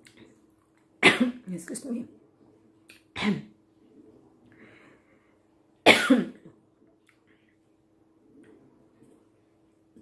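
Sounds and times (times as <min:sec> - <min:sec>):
woman coughing: 0:01.0 - 0:01.4, 0:03.2 - 0:03.6, 0:05.8 - 0:06.5.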